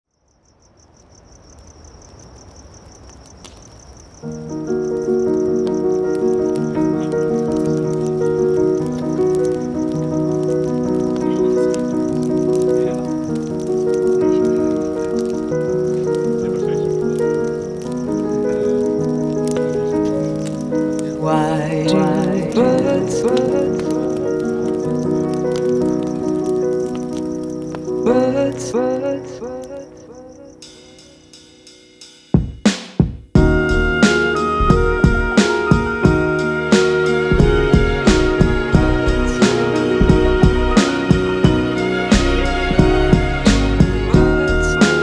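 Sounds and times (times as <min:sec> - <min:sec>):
crickets chirping: 0:00.1 - 0:45.0
person singing: 0:06.2 - 0:25.8, 0:27.9 - 0:31.3, 0:33.4 - 0:45.0
sustained music chords: 0:33.4 - 0:45.0.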